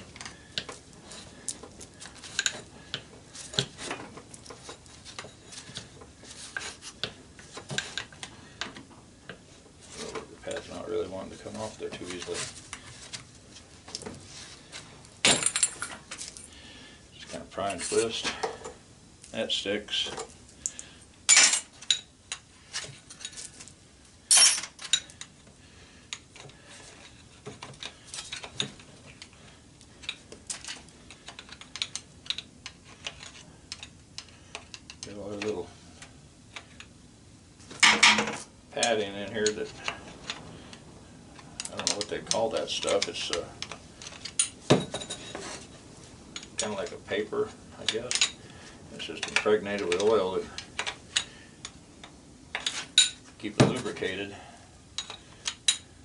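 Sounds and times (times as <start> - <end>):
hand tools clinking on metal: 47.8 - 48.4.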